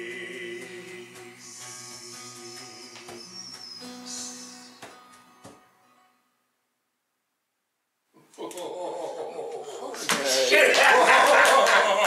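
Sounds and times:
acoustic guitar: 0.0 - 6.5.

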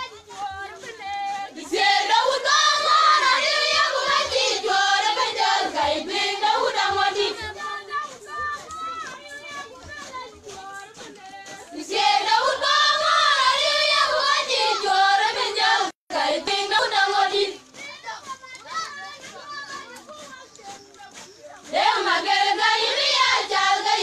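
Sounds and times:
group of voices singing: 0.0 - 17.8, 21.1 - 24.0.

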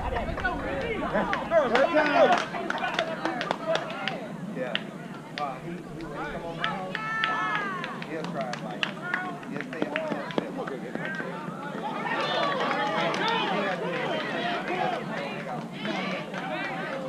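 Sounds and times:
people calling and shouting: 0.0 - 17.0.

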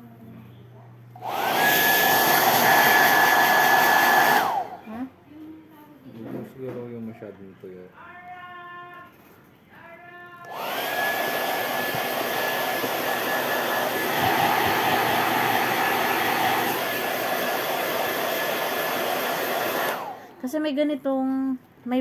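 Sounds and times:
hair dryer whine and air rush: 1.2 - 5.0, 10.5 - 20.4.

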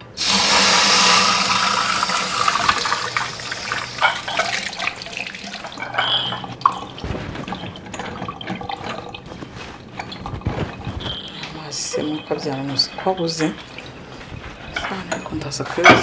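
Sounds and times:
water running into metal sink: 0.1 - 16.0.

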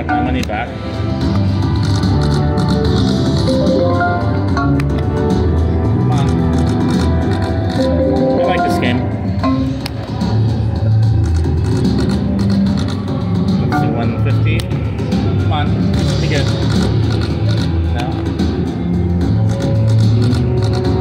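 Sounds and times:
slot machine game music: 0.0 - 1.4, 2.2 - 10.0, 13.6 - 14.5
slot machine spin sounds: 6.1 - 9.8.

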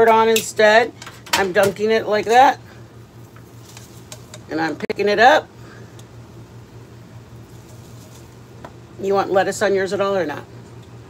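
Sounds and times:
steady low hum: 0.0 - 11.0
faint handling noises: 3.2 - 4.5.

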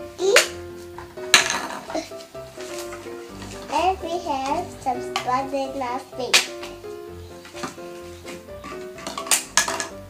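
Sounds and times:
light background music: 0.0 - 10.0
plastic toys handled: 2.6 - 3.7, 6.3 - 10.0.

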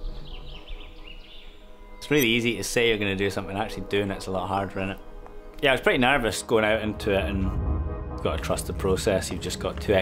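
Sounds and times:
sustained low notes: 6.8 - 10.0.

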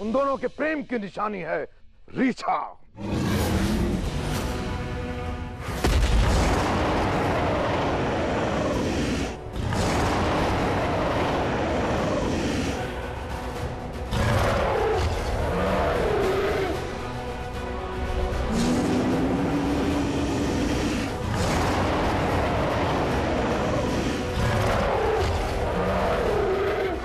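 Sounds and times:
rough monster roar: 3.0 - 4.4, 6.0 - 27.0
low dramatic drone: 3.0 - 27.0.

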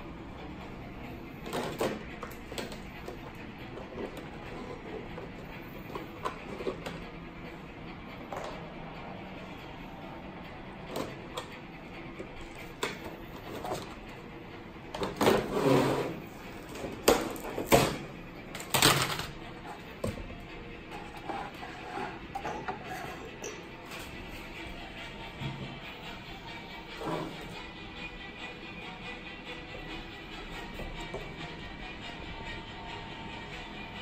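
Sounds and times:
soft background music: 0.0 - 34.0.

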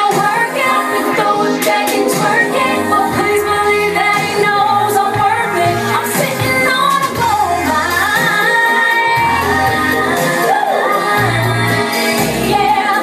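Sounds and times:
loud pop music with bass: 0.0 - 13.0
woman singing into microphone: 0.0 - 13.0.

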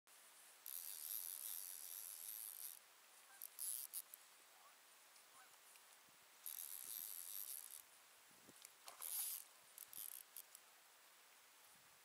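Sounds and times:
fishing reel whirring: 0.6 - 2.8, 3.4 - 4.2, 6.4 - 7.8, 8.9 - 10.6.

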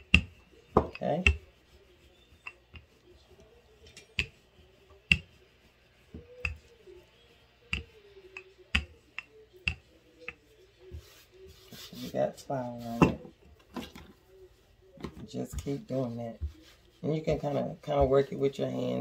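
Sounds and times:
rolling pin knocking on countertop: 0.0 - 1.4.

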